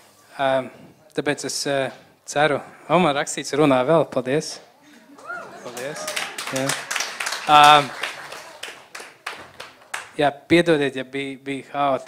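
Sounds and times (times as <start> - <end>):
congregation hand clapping: 5.1 - 10.2.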